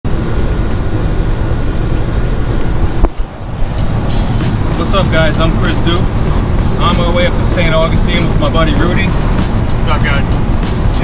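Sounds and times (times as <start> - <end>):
road and engine rumble in cab: 0.0 - 11.0.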